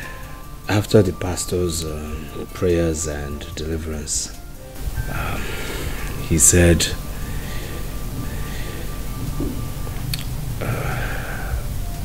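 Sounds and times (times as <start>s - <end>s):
faint hiss: 0.0s - 12.0s
steady low rumble: 0.0s - 12.0s
thin steady high tone: 0.0s - 12.0s.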